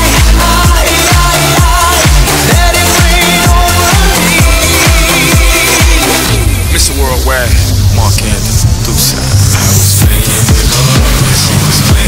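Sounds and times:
kick drum: 0:00.0 - 0:06.2, 0:10.0 - 0:12.0
deep bass: 0:00.0 - 0:12.0
electronic dance music: 0:00.0 - 0:12.0.

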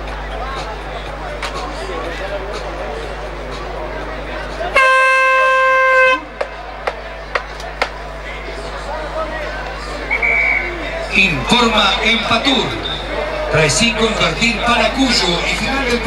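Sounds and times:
voices: 0:00.0 - 0:16.0
air horn blast: 0:04.7 - 0:06.3.

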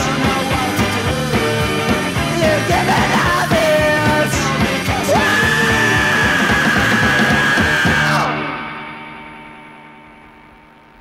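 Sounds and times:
rock band playing: 0:00.0 - 0:10.8.

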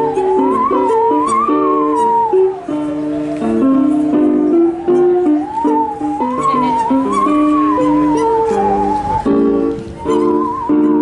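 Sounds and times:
bowed musical saw melody: 0:00.0 - 0:11.0
keyboard chords: 0:00.0 - 0:11.0.

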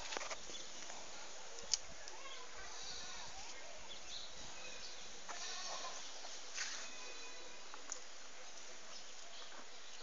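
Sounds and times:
goat bleating: 0:05.3 - 0:06.0.

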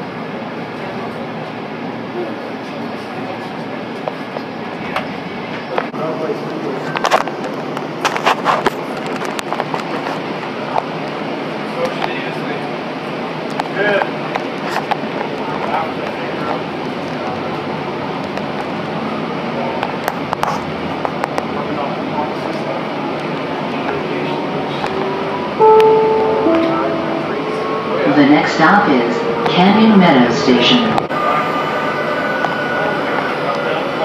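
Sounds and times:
passengers' voices: 0:00.0 - 0:34.0
train car background noise: 0:00.0 - 0:34.0.

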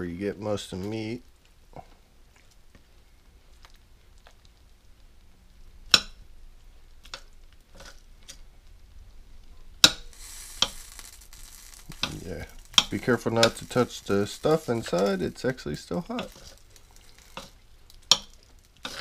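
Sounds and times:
soft wet scraping: 0:07.0 - 0:17.7
fork clicking against pot: 0:17.4 - 0:19.0.

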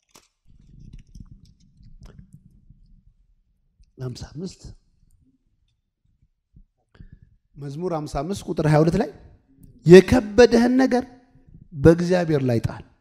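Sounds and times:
microphone handling noise: 0:00.5 - 0:05.3, 0:06.0 - 0:07.6, 0:11.4 - 0:11.9.

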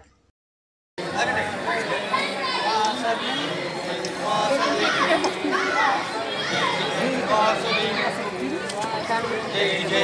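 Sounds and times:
crowd calling out and chattering: 0:01.0 - 0:10.0.

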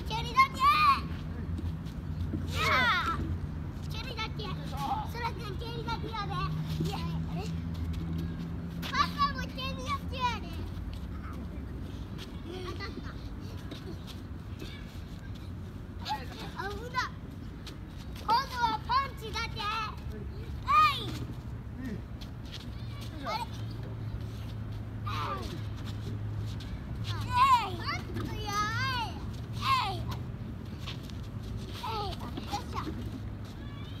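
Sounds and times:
child squealing: 0:33.6 - 0:34.0.

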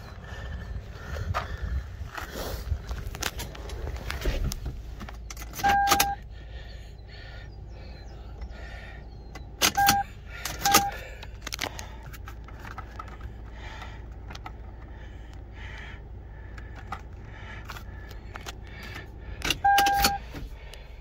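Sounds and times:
short electronic beeps: 0:05.6 - 0:06.2, 0:09.7 - 0:10.1, 0:10.7 - 0:11.0, 0:19.6 - 0:20.2.

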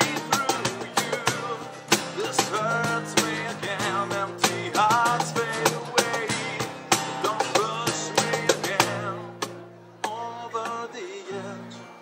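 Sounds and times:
acoustic guitar strumming: 0:00.0 - 0:12.0
man singing: 0:00.0 - 0:12.0.

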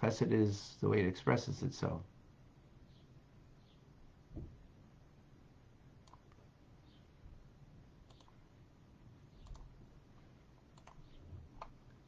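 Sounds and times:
faint clicks: 0:08.1 - 0:08.4, 0:09.4 - 0:09.7.

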